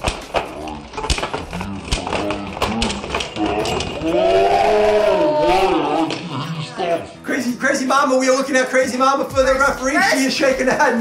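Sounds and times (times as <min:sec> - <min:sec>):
long wavering cry: 0:03.4 - 0:07.1.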